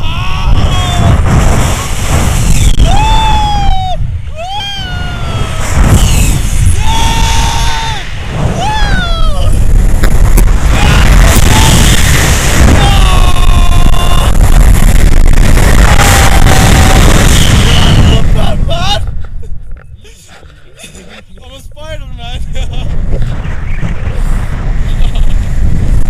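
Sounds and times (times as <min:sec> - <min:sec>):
man screaming and whooping: 0:00.0 - 0:01.2, 0:02.7 - 0:06.1, 0:06.7 - 0:09.7, 0:10.6 - 0:14.7, 0:15.5 - 0:19.1
wind buffeting microphone: 0:00.0 - 0:26.0.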